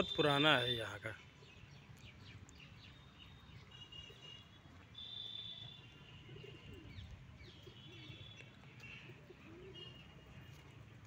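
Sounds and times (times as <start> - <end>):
dove cooing: 6.3 - 7.0, 9.0 - 10.0.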